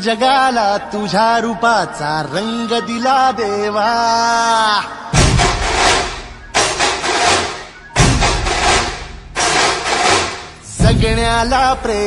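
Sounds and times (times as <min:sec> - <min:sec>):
devotional song: 0:00.0 - 0:05.2, 0:10.6 - 0:12.0
loud sudden boom: 0:05.2 - 0:09.8.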